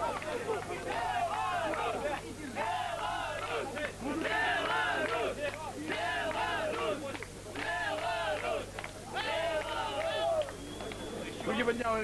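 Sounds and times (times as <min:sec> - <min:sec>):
crowd shouting and yelling: 0:00.0 - 0:11.8.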